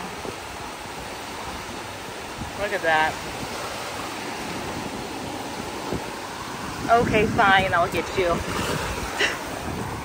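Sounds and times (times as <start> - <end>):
small waves breaking on beach: 0.0 - 10.0.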